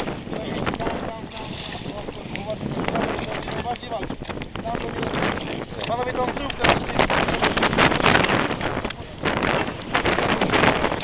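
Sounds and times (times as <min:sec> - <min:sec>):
choppy sea water: 0:00.0 - 0:11.0
wind buffeting microphone: 0:00.0 - 0:11.0
shark splashing at surface: 0:01.3 - 0:02.3.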